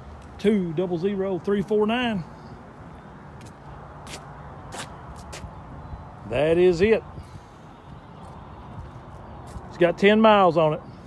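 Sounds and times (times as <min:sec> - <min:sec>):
footsteps on concrete: 0:03.3 - 0:05.6, 0:08.2 - 0:09.8.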